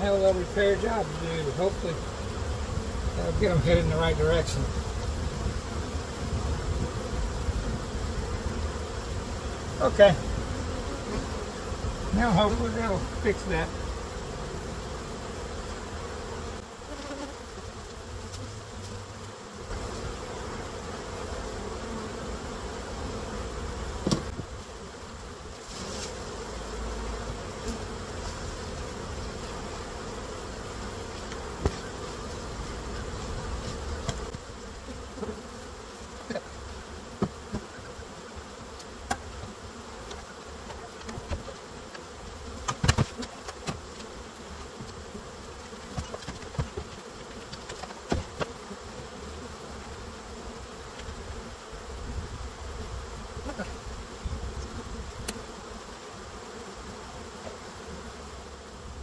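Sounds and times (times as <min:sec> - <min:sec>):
bees buzzing: 0:00.0 - 0:59.0
wooden hive equipment knocks: 0:24.0 - 0:24.5, 0:37.2 - 0:37.7, 0:40.6 - 0:42.0, 0:42.6 - 0:44.1, 0:45.8 - 0:48.6.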